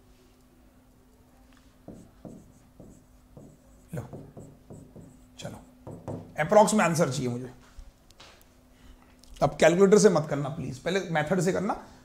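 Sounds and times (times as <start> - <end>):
faint steady hum: 0.0 - 12.0
stylus tapping on screen: 1.9 - 5.2, 5.8 - 6.4.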